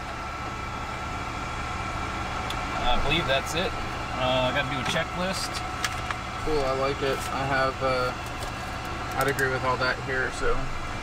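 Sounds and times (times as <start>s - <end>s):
cockpit systems hum and whine: 0.0s - 11.0s.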